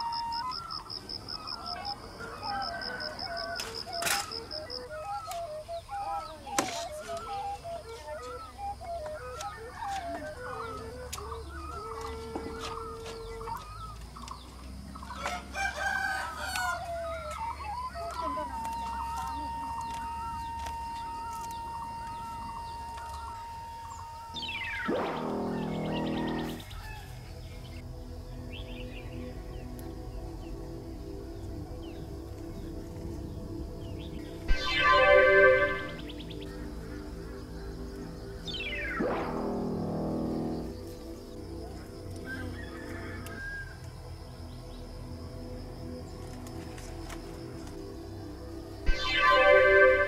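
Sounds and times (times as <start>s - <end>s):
soft background music: 0.0s - 50.0s
rooster crowing: 1.8s - 4.0s, 15.1s - 17.4s, 25.3s - 27.1s, 42.2s - 43.8s
birds chirping: 3.9s - 29.3s.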